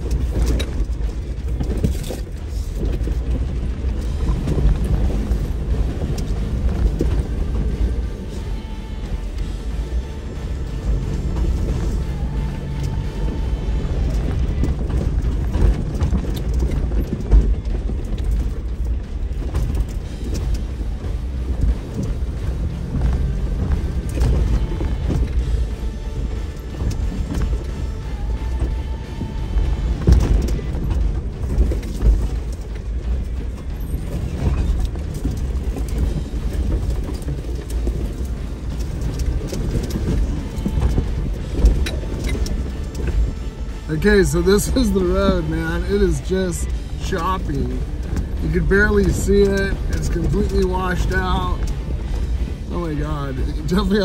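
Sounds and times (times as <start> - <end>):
body and suspension rattling: 0.0 - 54.0
music: 0.0 - 54.0
vehicle crawling over rocks: 0.0 - 54.0.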